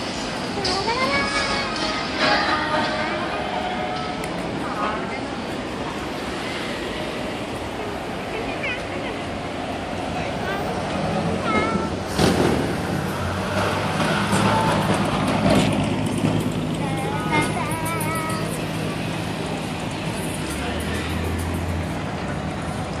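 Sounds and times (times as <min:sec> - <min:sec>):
cars cruising and idling: 0:00.0 - 0:23.0
voices: 0:00.4 - 0:12.2, 0:13.6 - 0:23.0
music: 0:00.6 - 0:03.5.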